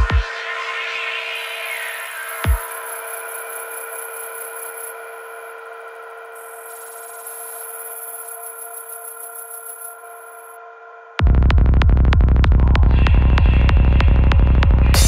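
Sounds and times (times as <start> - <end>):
high hissing texture: 1.0 - 5.6, 6.4 - 10.6.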